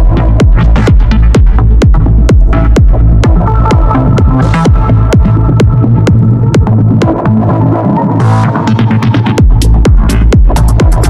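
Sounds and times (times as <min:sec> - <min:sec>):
sustained bass tone: 0:00.0 - 0:11.0
synth notes: 0:00.0 - 0:11.0
techno kick drum: 0:00.0 - 0:11.0.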